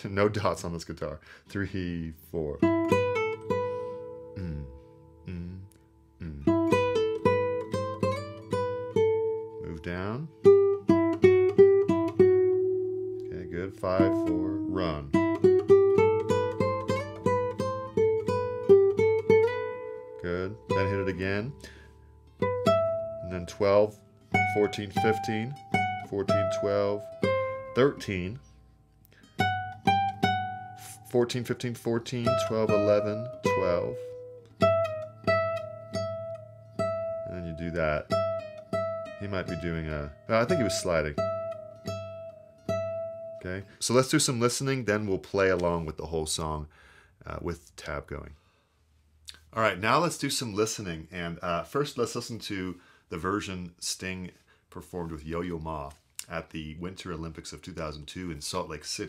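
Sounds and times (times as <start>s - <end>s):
nylon-string guitar solo melody: 1.8s - 45.9s.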